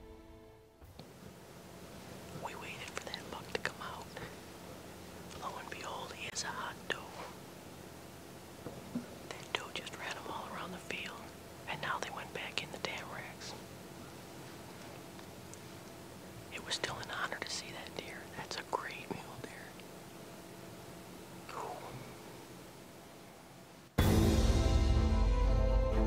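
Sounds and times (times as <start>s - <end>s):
man whispering: 2.3s - 4.4s, 5.3s - 7.4s, 9.3s - 13.6s, 16.5s - 19.8s, 21.4s - 22.2s.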